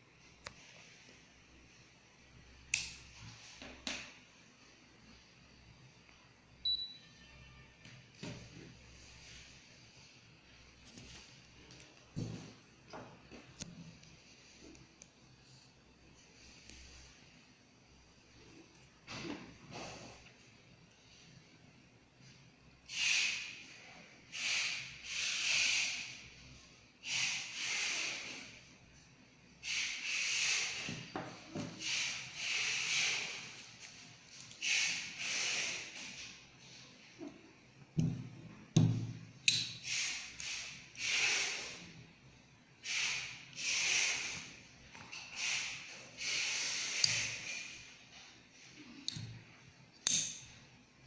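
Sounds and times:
short high electronic beep: 6.6s - 7.7s.

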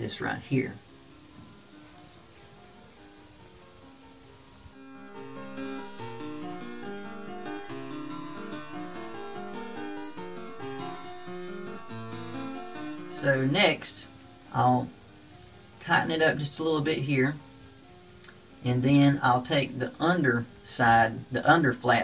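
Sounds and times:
plucked harpsichord-like music: 0.0s - 22.0s.

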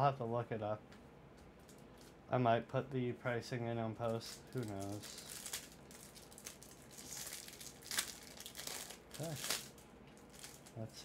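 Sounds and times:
plastic wrapper crinkling: 1.6s - 2.2s, 4.0s - 10.8s.

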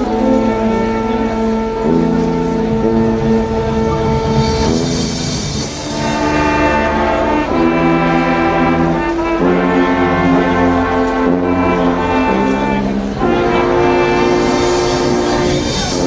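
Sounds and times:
low sousaphone bass notes: 0.0s - 5.1s
brass band playing held chords: 0.0s - 16.0s.

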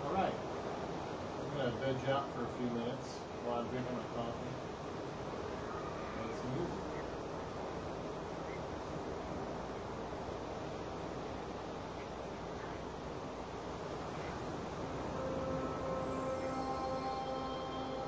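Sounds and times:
ocean surf: 0.0s - 18.0s
high falling synth sweep: 14.7s - 18.0s
synthesizer chord: 14.7s - 18.0s.

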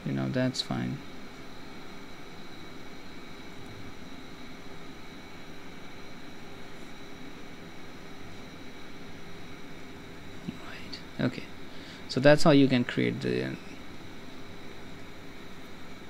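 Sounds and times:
faint hum: 0.0s - 16.0s
thin steady tones: 0.0s - 16.0s.

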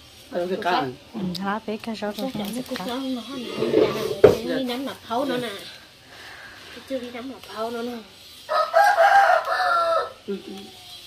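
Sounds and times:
rooster crowing: 8.4s - 11.0s.

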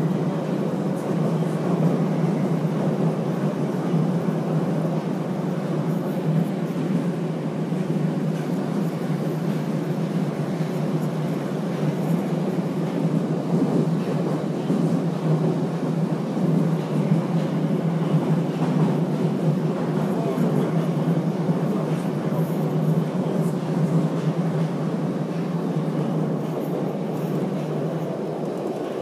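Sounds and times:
train wheels and motors rumbling: 0.0s - 29.0s.

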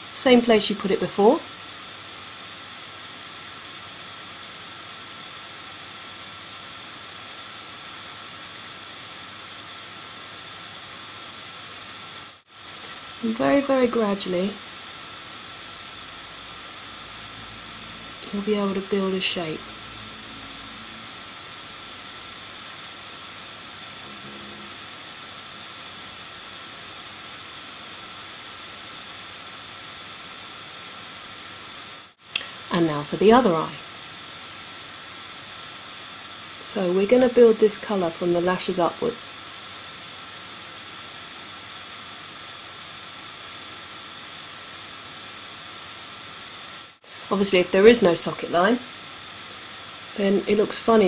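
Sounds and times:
high-pitched electrical whine: 0.0s - 51.0s
microphone hiss: 11.6s - 39.3s.

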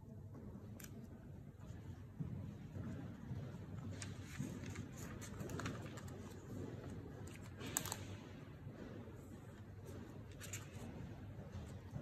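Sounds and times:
paper rustling: 3.9s - 6.6s.

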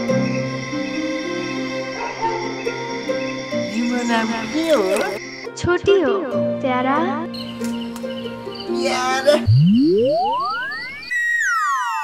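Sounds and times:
cascade of falling tones: 9.4s - 12.0s
synthesised rising tone: 9.4s - 12.0s.

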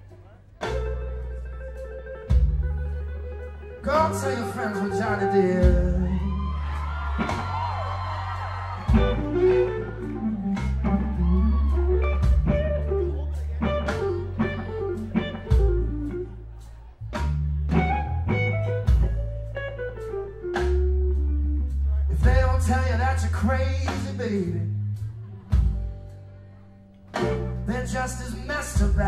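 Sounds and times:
electric guitar phrases: 0.0s - 8.1s, 8.8s - 29.0s
electric bass notes: 0.0s - 29.0s
drum hits: 8.9s - 9.7s, 12.2s - 12.8s, 17.2s - 19.4s.

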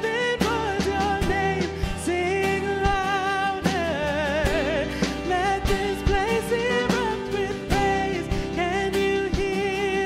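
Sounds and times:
live worship band: 0.0s - 10.0s
woman singing into a microphone: 0.0s - 10.0s.

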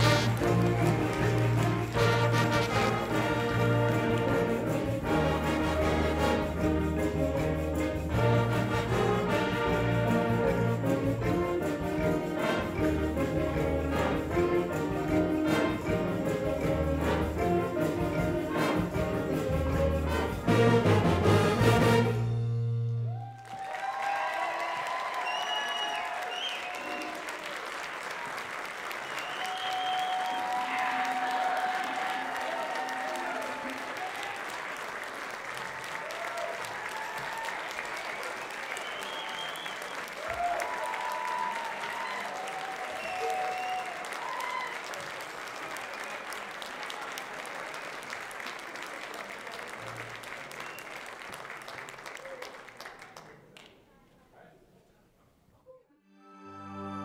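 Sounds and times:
audience applauding: 0.0s - 22.0s, 22.8s - 53.9s
crowd whoops and shouts: 23.1s - 27.5s, 29.0s - 34.5s, 35.6s - 45.2s.

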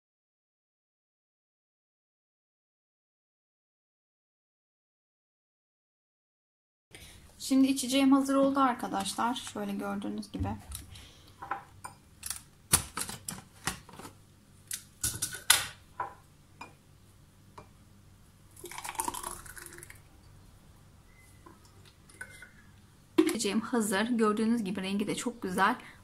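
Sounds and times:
thick smoothie pouring into glass: 18.5s - 20.1s.

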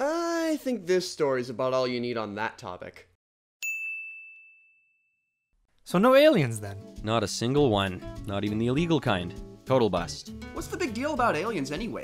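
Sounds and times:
high bell-like ding: 3.6s - 5.4s.

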